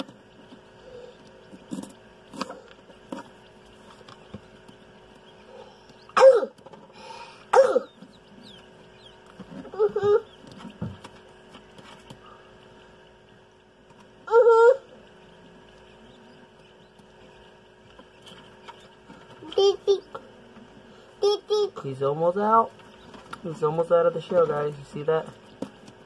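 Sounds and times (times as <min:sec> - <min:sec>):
incubator fan hum: 0:00.0 - 0:26.0.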